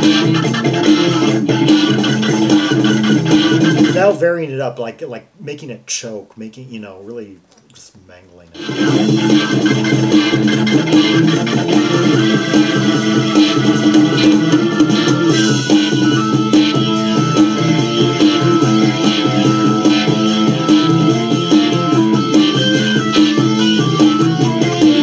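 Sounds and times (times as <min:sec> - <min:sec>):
throbbing bass line: 0:00.0 - 0:04.2, 0:08.5 - 0:25.0
organ through rotating speaker: 0:00.0 - 0:04.4, 0:08.5 - 0:25.0.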